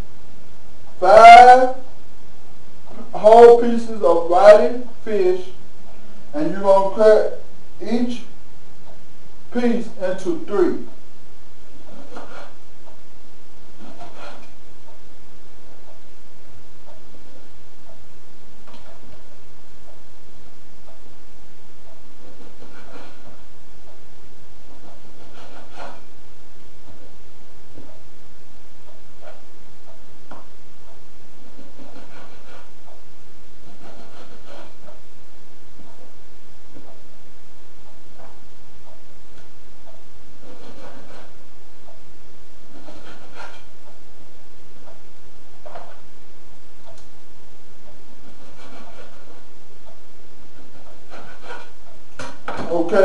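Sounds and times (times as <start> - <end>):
steady hum: 0.0 - 53.0
knife sawing through fish: 24.8 - 26.1, 31.6 - 32.8, 33.6 - 34.8, 40.4 - 41.4, 42.7 - 43.7, 48.2 - 49.5, 50.6 - 51.8.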